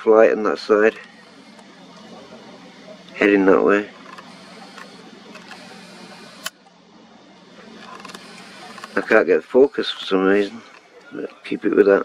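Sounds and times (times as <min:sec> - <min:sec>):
camera click: 0:04.0 - 0:06.6.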